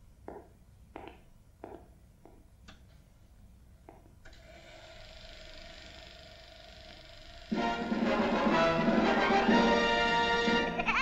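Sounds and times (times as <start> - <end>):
projector whirring and hissing: 4.2 - 10.2.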